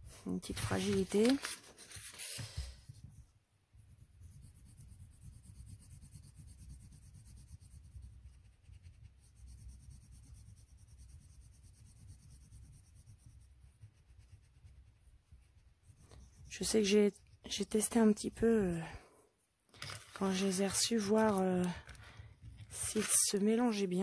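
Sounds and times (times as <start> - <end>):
coloured pencil scratching paper: 0.0 - 18.8, 19.8 - 24.0.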